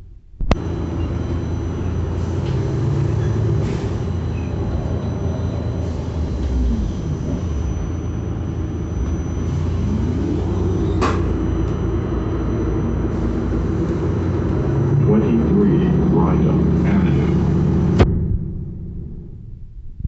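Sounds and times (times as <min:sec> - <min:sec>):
bus engine drone: 0:00.0 - 0:20.0
road rumble: 0:00.0 - 0:20.0.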